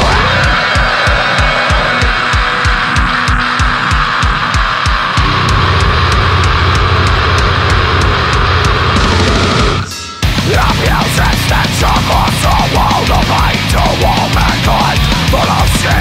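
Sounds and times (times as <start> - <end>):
electric guitar: 0.0 - 16.0
fast kick drum beats: 0.0 - 16.0
heavy metal instrumental: 0.0 - 16.0.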